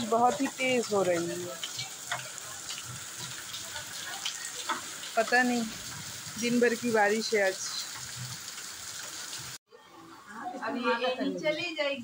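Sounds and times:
drips and splashes: 0.0 - 9.6
heavy rain on concrete: 0.0 - 9.6.

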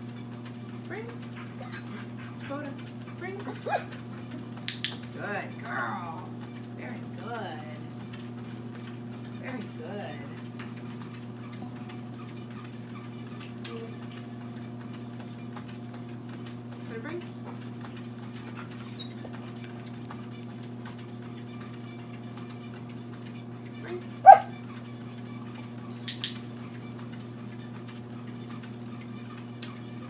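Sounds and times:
dog whimpering: 1.4 - 2.3, 3.4 - 4.0, 18.8 - 19.2, 24.2 - 24.6
dog yip: 3.5 - 4.0, 24.2 - 24.6.

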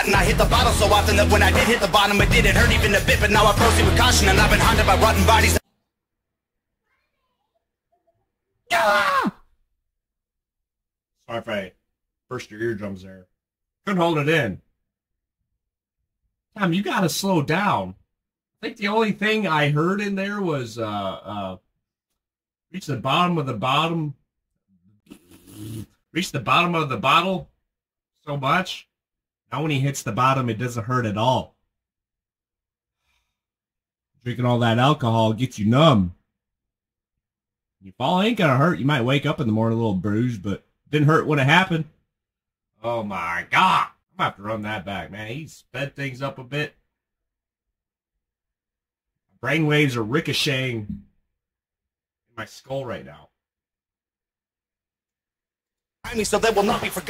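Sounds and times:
man exclaiming loudly: 8.7 - 9.4, 43.0 - 43.9.

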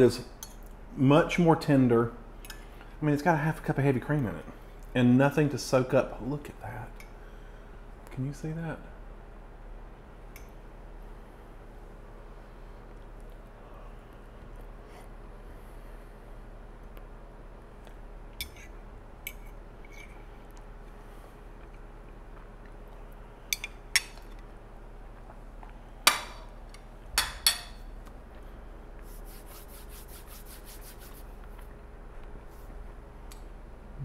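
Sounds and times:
faint room hum: 0.0 - 34.0.

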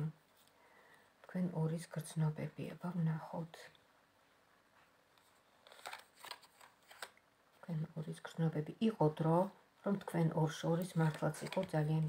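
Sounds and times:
cards being shuffled: 5.2 - 7.2.

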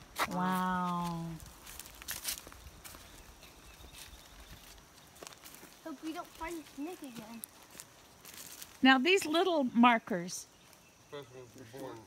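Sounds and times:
footsteps on dry leaves: 0.0 - 9.5.

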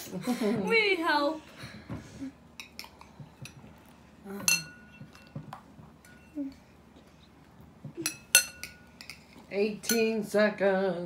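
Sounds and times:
spoon clinking on ceramic bowl: 4.4 - 5.4, 8.0 - 10.2.

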